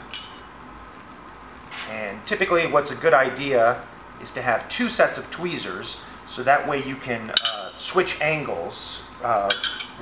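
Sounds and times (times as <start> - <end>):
faint steady background hiss: 0.0 - 10.0.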